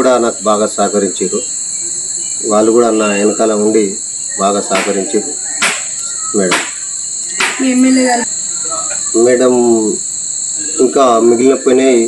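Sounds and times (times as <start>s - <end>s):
person speaking: 0.0s - 5.6s, 7.4s - 10.0s, 10.6s - 12.0s
crickets chirping chorus: 0.0s - 12.0s.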